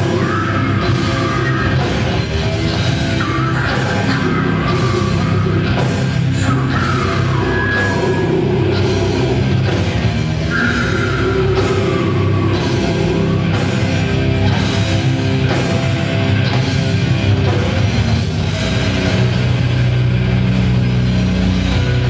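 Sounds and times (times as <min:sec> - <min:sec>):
bass guitar: 0:00.0 - 0:22.0
distorted electric guitars: 0:00.0 - 0:22.0
drum kit: 0:00.0 - 0:22.0.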